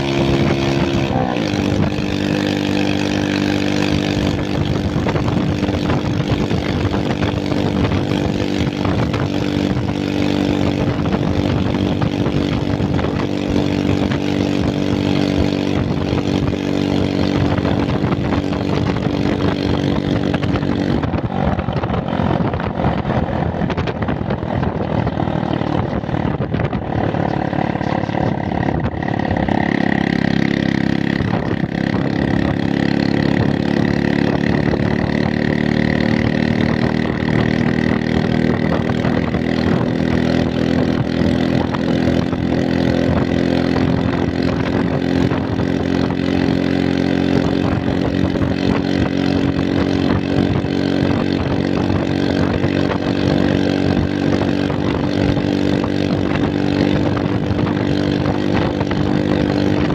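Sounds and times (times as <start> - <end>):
motorbike engine running: 0.0 - 59.9
road and wind noise: 0.0 - 59.9.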